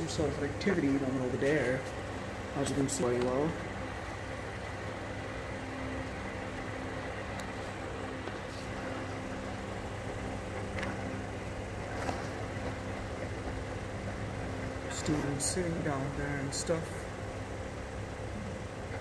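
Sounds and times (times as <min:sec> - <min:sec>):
faint steady tones: 0:00.0 - 0:19.0
low mechanical hum: 0:00.0 - 0:19.0.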